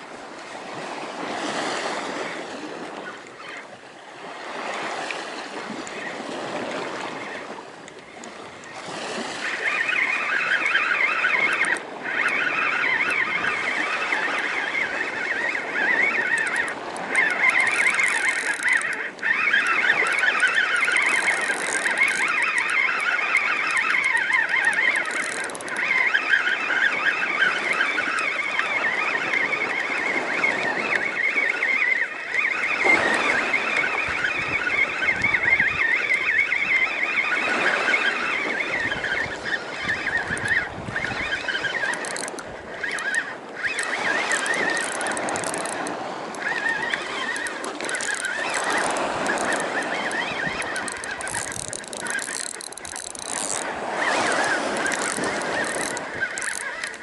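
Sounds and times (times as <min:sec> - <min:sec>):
fishing reel whirring: 0:00.0 - 0:57.0.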